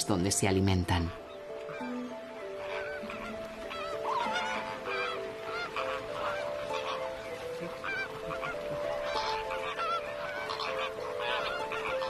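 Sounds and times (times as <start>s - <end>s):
background music with held notes: 0.0s - 12.0s
flamingos honking: 0.4s - 12.0s.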